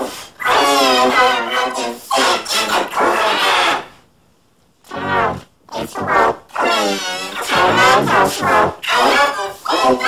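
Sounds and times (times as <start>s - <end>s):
pitch-shifted yelling and wailing: 5.7s - 9.2s.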